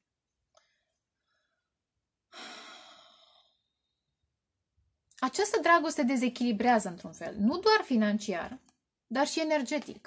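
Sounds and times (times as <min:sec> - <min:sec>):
woman sighing: 0:02.3 - 0:03.5.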